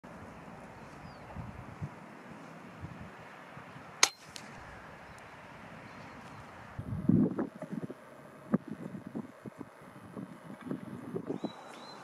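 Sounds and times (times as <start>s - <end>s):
air rifle shot crack: 4.0s - 4.6s.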